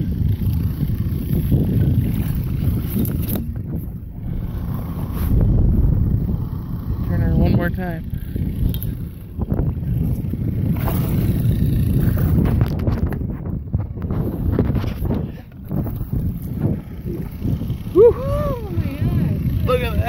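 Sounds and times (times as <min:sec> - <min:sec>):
low rumble: 0:00.0 - 0:20.0
person exclaiming: 0:17.9 - 0:18.9.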